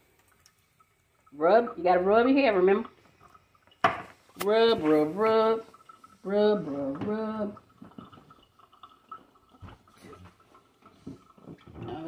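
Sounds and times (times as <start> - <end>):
soft ticks and drips: 0.0 - 12.0.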